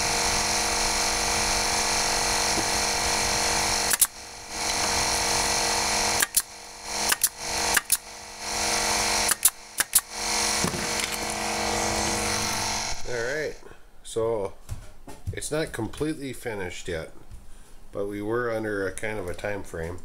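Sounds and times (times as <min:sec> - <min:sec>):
pneumatic nailer shots: 0:00.0 - 0:13.1
steady machine hum: 0:00.0 - 0:13.8.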